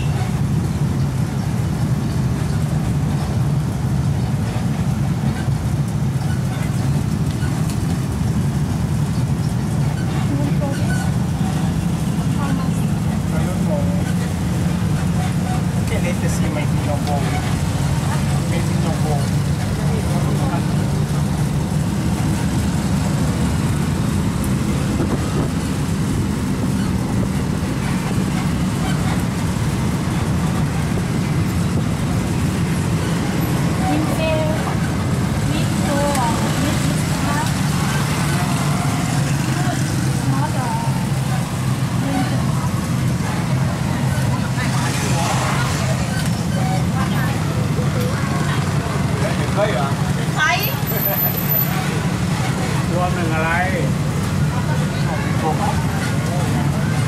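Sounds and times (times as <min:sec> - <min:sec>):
bus engine droning: 0:00.0 - 0:57.0
faint voices: 0:09.6 - 0:57.0.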